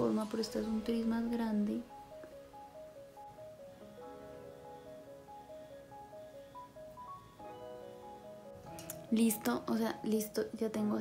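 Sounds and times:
quiet background melody: 0:00.0 - 0:11.0.

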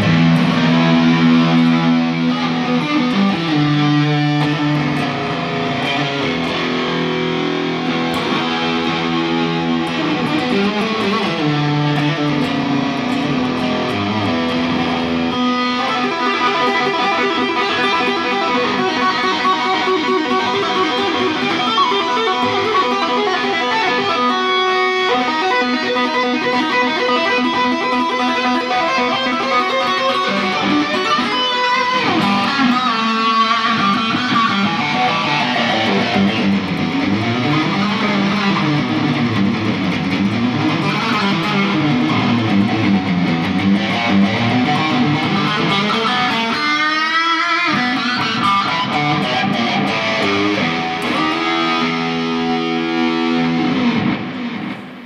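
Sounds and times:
electric guitar playing: 0:00.0 - 0:55.0.

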